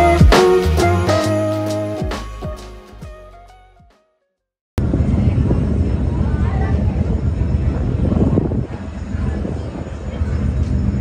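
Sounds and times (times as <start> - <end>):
ship diesel engines rumbling: 4.8 - 11.0.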